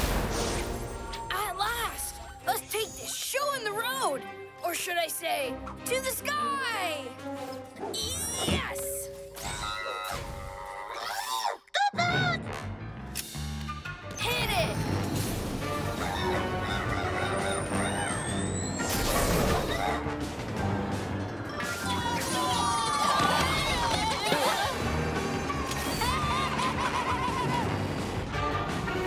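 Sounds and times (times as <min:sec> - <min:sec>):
cartoon background music: 0:00.0 - 0:29.0
cartoon sound effects: 0:08.0 - 0:12.6, 0:16.0 - 0:20.0.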